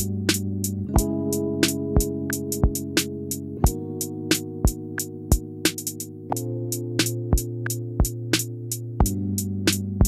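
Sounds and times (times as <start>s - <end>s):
held keyboard chords: 0.0s - 10.0s
programmed drum beat: 0.0s - 10.0s.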